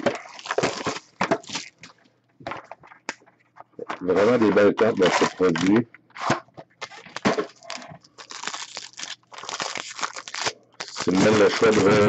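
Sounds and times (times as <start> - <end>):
plastic wrap crinkling: 0.0 - 2.0, 4.0 - 12.0.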